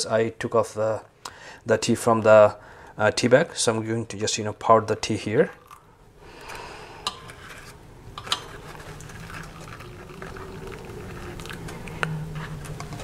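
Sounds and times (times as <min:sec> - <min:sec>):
hot tea trickling into glass cup: 0:08.2 - 0:12.1.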